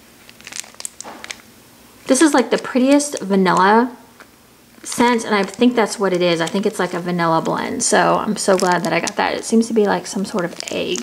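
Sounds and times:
plastic clamshell crinkling and clicking: 0.2 - 1.5, 2.5 - 11.0.

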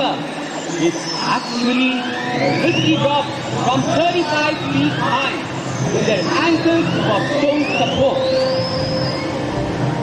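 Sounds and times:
long rising tone: 0.0 - 10.0
stadium crowd voices: 0.0 - 10.0.

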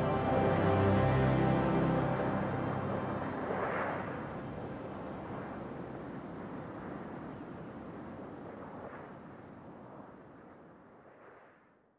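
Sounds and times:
toneless rumbling hiss: 0.0 - 5.6.

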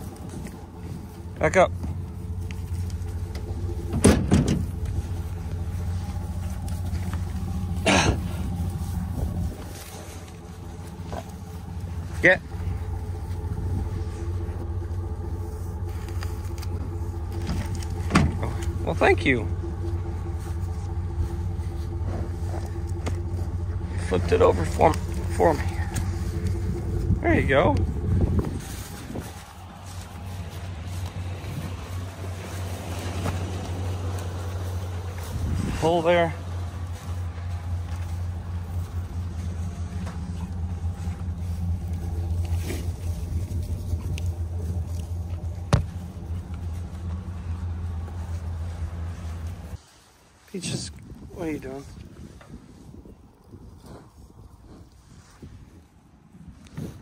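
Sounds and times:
truck engine idling: 0.0 - 50.8.

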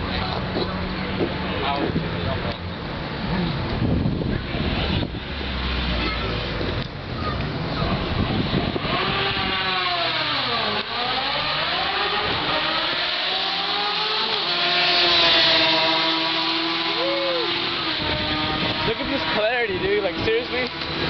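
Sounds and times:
motorcycle engines revving: 0.0 - 21.0.

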